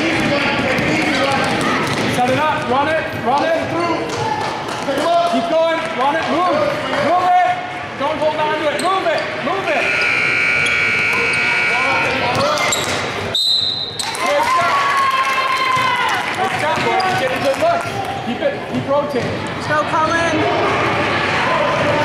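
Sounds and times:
spectators' voices echoing: 0:00.0 - 0:22.0.

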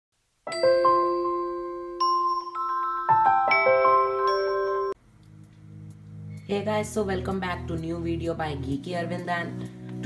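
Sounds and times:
bell-like chime notes: 0:00.5 - 0:05.0.

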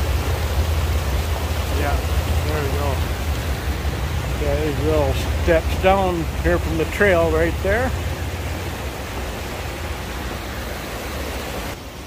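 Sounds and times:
creek rushing over rocks: 0:00.0 - 0:12.0.

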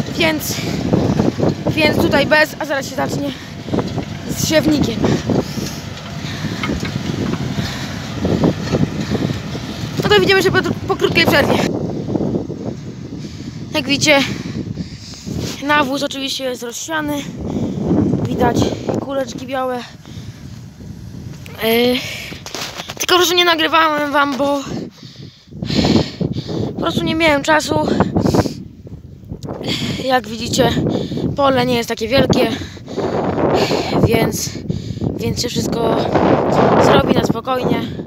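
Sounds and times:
tractor diesel engine under load: 0:00.0 - 0:38.0.

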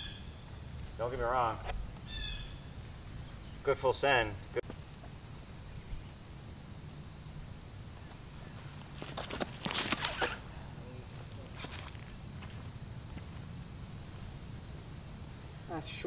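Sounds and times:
insects trilling: 0:00.0 - 0:16.0
footsteps on pavement: 0:08.0 - 0:10.2, 0:11.1 - 0:13.6
disc thrown: 0:09.0 - 0:10.5.

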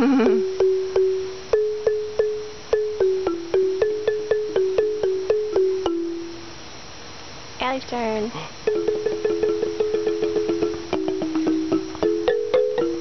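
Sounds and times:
wooden xylophone struck with mallets: 0:00.2 - 0:06.5, 0:08.6 - 0:13.0.

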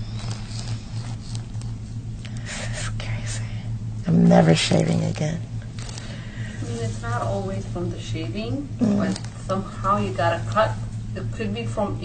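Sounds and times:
low hum: 0:00.0 - 0:12.0
faint whispering: 0:02.5 - 0:03.7.

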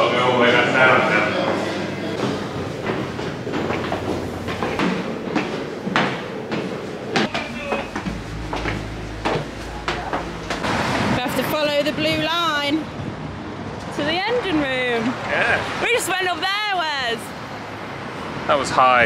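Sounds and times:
footsteps down indoor stairs: 0:02.2 - 0:10.6
echoing voices: 0:07.1 - 0:13.0.

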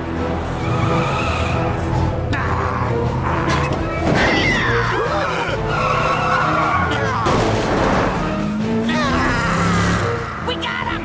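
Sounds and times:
car tires skidding and squealing: 0:00.3 - 0:02.2, 0:03.1 - 0:07.2
people shouting and screaming: 0:02.3 - 0:07.4.

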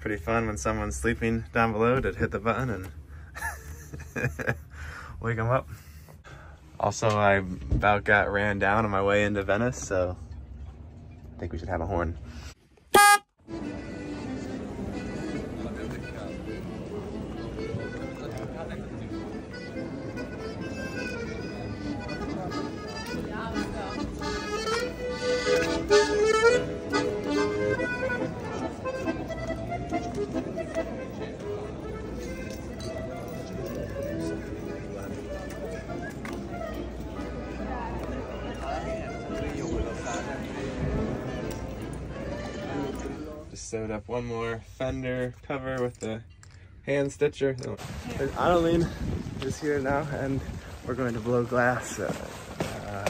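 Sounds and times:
electric boat horn blast: 0:12.9 - 0:13.3
accordion music: 0:13.0 - 0:43.4.

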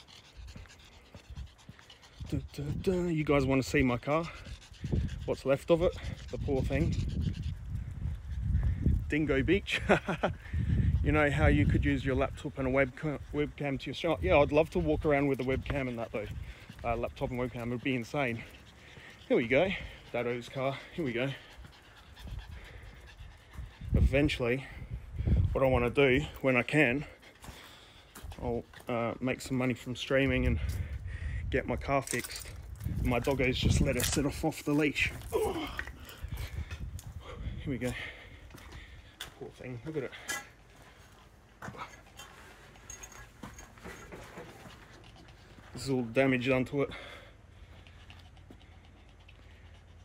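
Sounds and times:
dog panting: 0:00.0 - 0:31.1, 0:32.6 - 0:50.0
light walking thumps: 0:00.3 - 0:03.1, 0:12.4 - 0:29.6, 0:32.1 - 0:48.7
wind rumble on microphone: 0:00.4 - 0:18.6, 0:19.5 - 0:26.4, 0:30.1 - 0:39.6.

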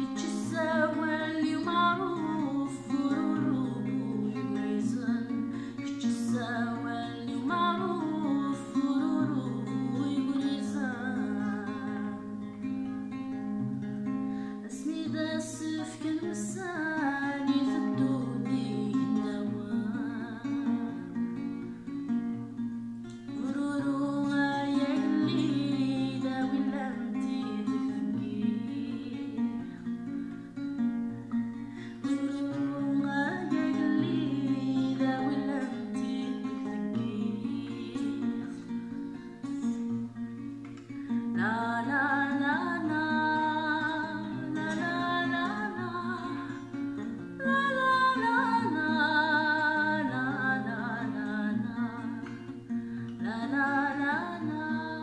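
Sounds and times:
woman singing: 0:00.0 - 0:13.6, 0:14.5 - 0:22.0, 0:23.1 - 0:55.0
acoustic guitar: 0:00.0 - 0:55.0.

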